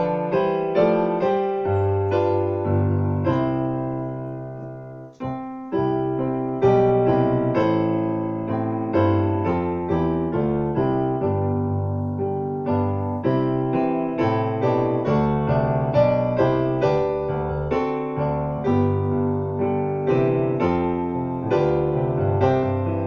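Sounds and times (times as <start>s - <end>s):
piano chords and melody: 0.0s - 23.0s.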